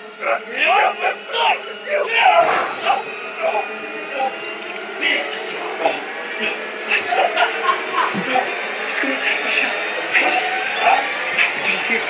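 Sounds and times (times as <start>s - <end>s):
sustained music: 0.0s - 12.0s.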